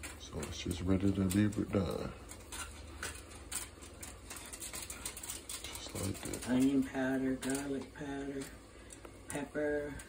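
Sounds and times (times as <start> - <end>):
plastic wrap and foil crinkling: 0.0 - 10.0.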